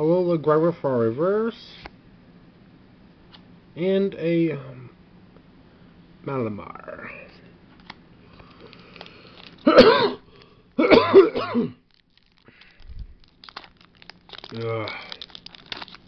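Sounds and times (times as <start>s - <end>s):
foil wrapper crinkling: 8.3s - 10.6s, 11.8s - 16.0s
person coughing: 9.6s - 10.2s, 10.8s - 11.8s.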